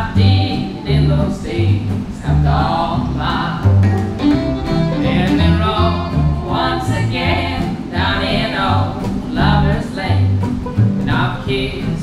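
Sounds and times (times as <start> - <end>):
acoustic guitar: 0.0 - 12.0
banjo: 0.0 - 12.0
upright bass line: 0.0 - 12.0.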